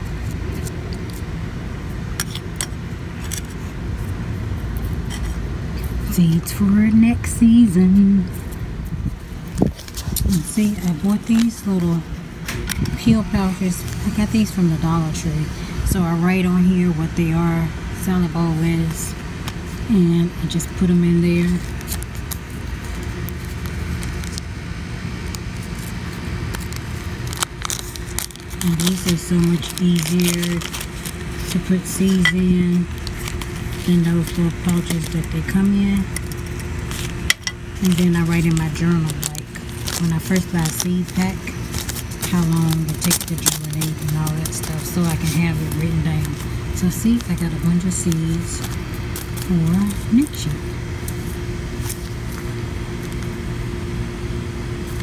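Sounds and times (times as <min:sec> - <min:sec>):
low background rumble: 0:00.0 - 0:55.0
plastic pouch crinkling: 0:09.4 - 0:14.6, 0:21.4 - 0:24.6, 0:25.2 - 0:53.3.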